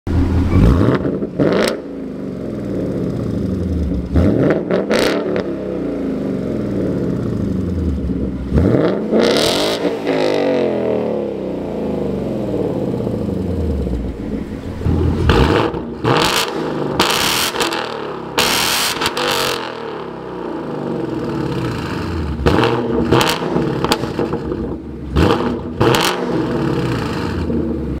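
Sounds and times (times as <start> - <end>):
car engine revving: 0.1 - 28.0.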